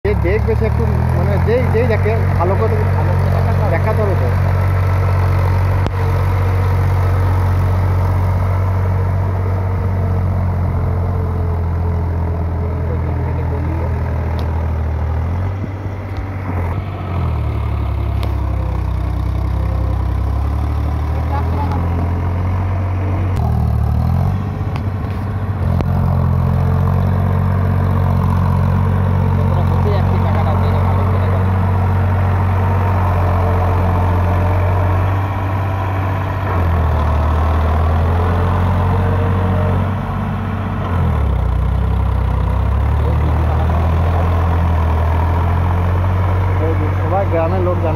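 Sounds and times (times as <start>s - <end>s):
tractor engine running: 0.0s - 47.9s.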